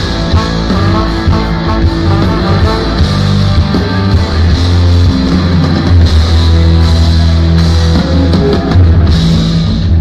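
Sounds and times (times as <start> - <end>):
drum kit: 0.0 - 10.0
electric bass: 0.0 - 10.0
electric guitar: 0.0 - 10.0.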